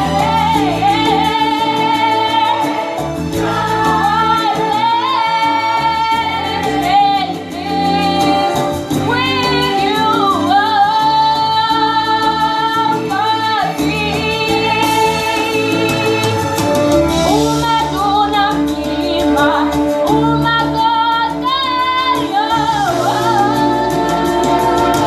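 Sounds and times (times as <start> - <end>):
girls singing through a microphone: 0.0 - 15.6, 19.2 - 25.0
instrumental accompaniment: 0.0 - 25.0.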